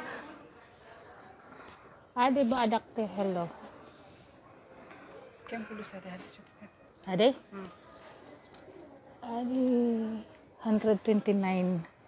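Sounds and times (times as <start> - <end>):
quiet shop background: 0.0 - 12.0.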